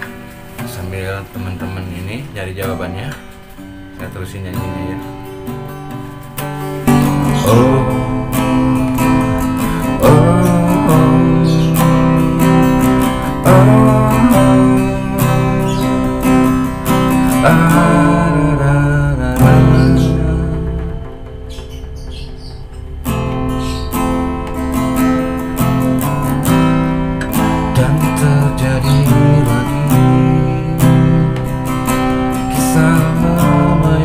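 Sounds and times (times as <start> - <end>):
acoustic guitar strumming: 0.0 - 34.0
man singing: 6.9 - 16.2, 16.8 - 21.6, 27.6 - 31.5, 32.4 - 34.0.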